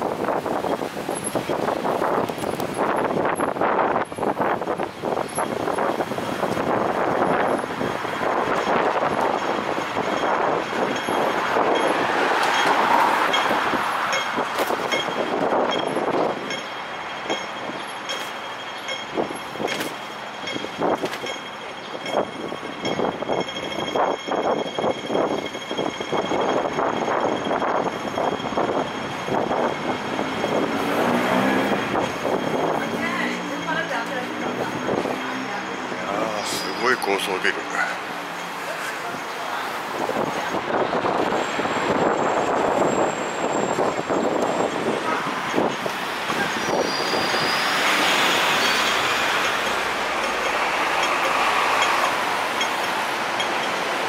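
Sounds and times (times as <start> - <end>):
passing traffic: 0.0 - 54.0
heavy vehicle passing: 29.2 - 54.0.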